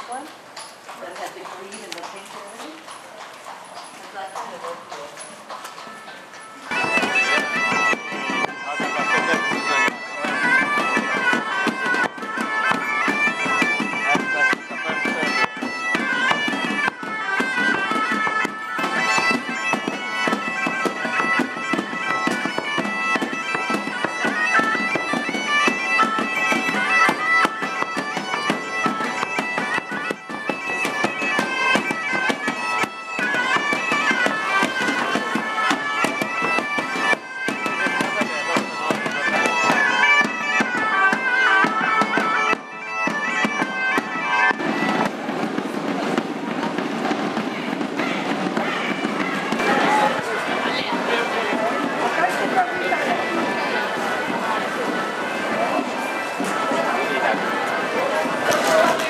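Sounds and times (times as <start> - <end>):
bagpipes and drums band: 0.0 - 59.0.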